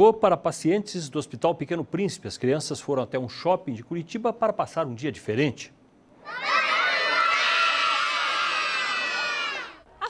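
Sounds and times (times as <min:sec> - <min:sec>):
children cheering: 0:06.2 - 0:09.8.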